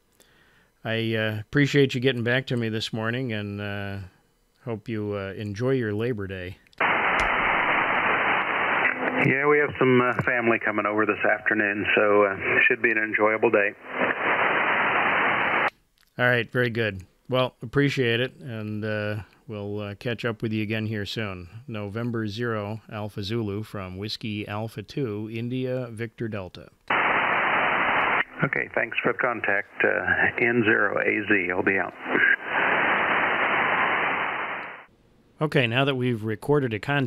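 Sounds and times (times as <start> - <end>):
radio static hiss: 6.8 - 15.7, 26.9 - 34.9
clipped syllable over radio: 26.9 - 34.8.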